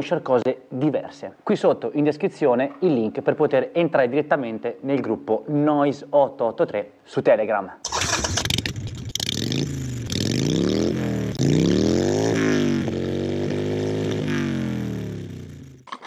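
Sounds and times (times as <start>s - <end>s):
motorcycle engine revving: 7.9s - 15.9s.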